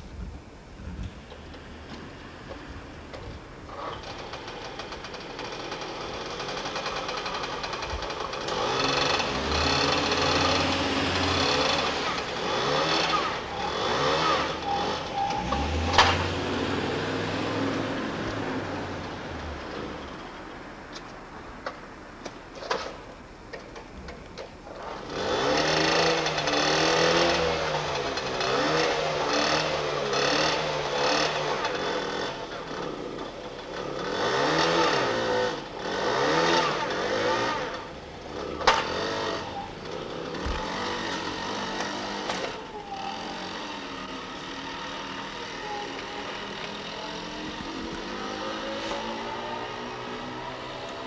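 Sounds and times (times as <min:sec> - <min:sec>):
moped engine revving: 0:03.7 - 0:20.5, 0:24.7 - 0:51.0.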